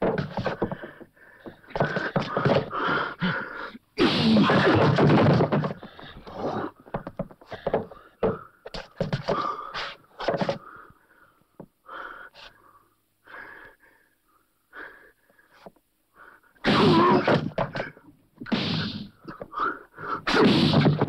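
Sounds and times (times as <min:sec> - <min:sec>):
people gasping and panting: 0:00.0 - 0:12.6
sharp knocks and scuffs: 0:06.9 - 0:09.4.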